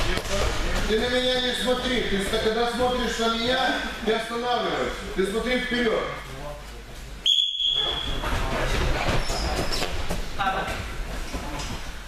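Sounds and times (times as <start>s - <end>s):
people moving on mats: 0.0s - 3.8s, 7.8s - 12.0s.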